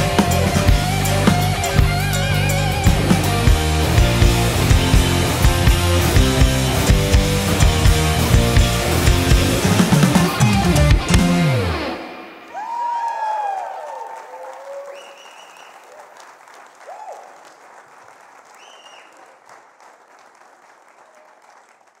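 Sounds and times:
audience applauding: 0.0 - 11.8, 12.5 - 22.0
cheers and whistles: 12.5 - 16.2, 16.8 - 17.5, 18.6 - 19.4.

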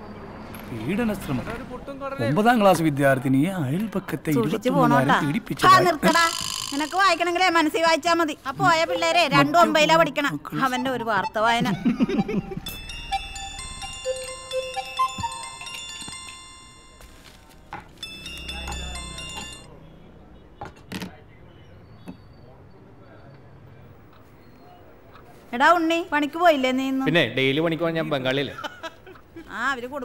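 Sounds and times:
bright chiming bell melody: 11.9 - 19.8.

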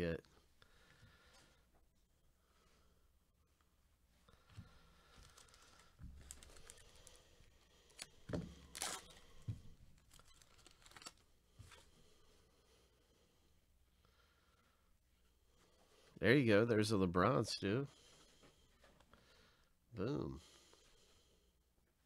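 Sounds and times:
foil wrapper tearing and crinkling: 10.1 - 11.2.

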